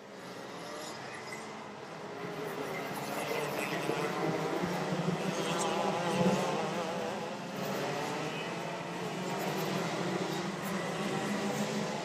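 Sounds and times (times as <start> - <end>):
kart engine revving: 0.2 - 12.0.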